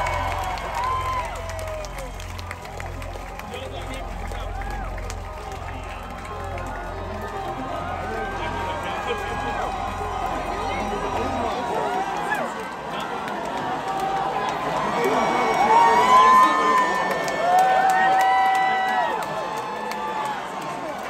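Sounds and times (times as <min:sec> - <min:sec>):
pulsing bass drone: 0:00.0 - 0:12.9
crowd talking and shouting: 0:00.0 - 0:21.0.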